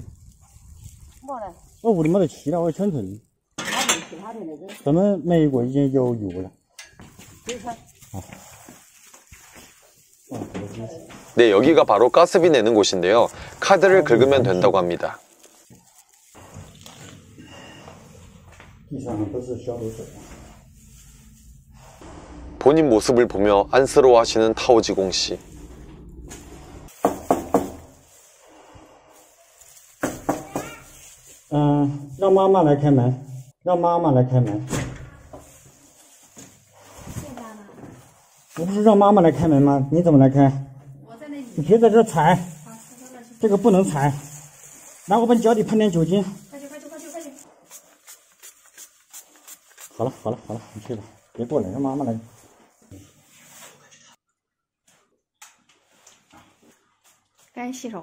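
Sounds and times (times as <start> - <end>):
soft rustles: 0.0 - 2.9, 7.0 - 21.9, 27.7 - 32.3, 35.3 - 39.4, 41.2 - 51.2, 52.0 - 54.2
knocking on a door: 27.0 - 27.9, 30.0 - 30.6.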